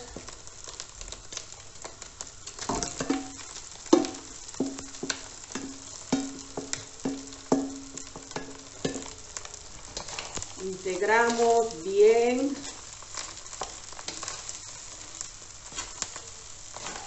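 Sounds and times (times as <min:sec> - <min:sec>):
frying sizzle: 0:00.0 - 0:17.0
spatula knocking a steel bowl: 0:04.0 - 0:09.1.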